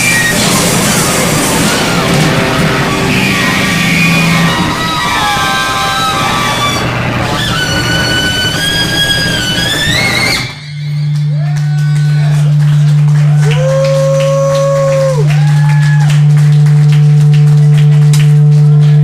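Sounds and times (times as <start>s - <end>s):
live amplified band music: 0.0s - 11.2s
higher sliding tones: 0.0s - 11.4s
loud low drone: 0.0s - 19.0s.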